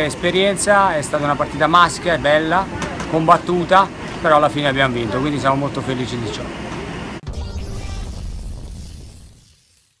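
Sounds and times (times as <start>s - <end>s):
low noisy sweep: 6.7s - 9.9s.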